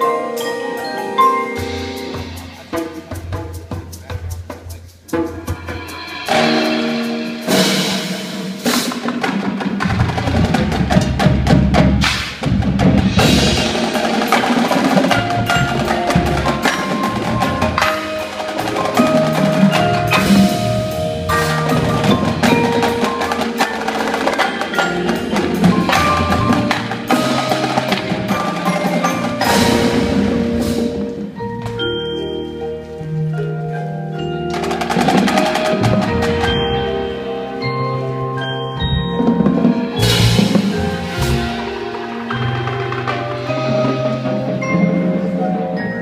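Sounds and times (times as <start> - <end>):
marching drums and cymbals: 0.0 - 46.0
marimbas and vibraphones: 0.0 - 46.0.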